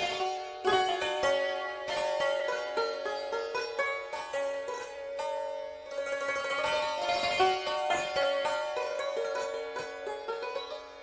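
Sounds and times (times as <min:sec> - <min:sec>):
plucked string instrument solo: 0:00.0 - 0:11.0.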